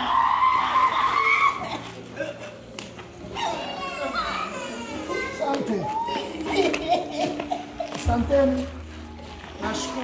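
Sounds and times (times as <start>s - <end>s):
woman shrieking: 0.0s - 1.9s.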